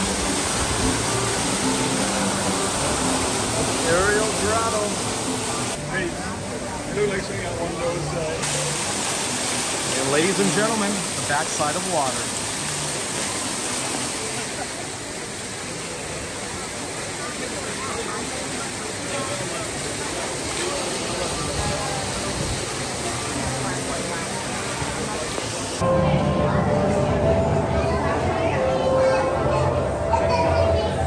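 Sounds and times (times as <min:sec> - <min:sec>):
waterfall splashing into pool: 0:00.0 - 0:06.4, 0:07.1 - 0:25.8
music: 0:00.0 - 0:11.2, 0:25.8 - 0:31.0
crowd voices: 0:00.0 - 0:31.0.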